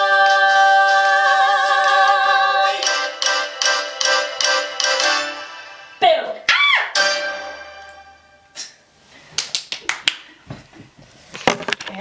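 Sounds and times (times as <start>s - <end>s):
women singing unaccompanied: 0.0s - 3.1s.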